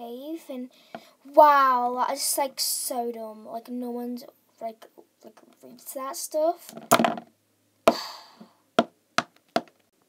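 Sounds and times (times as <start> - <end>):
plastic toys knocking on tabletop: 6.7 - 7.3, 8.8 - 9.8.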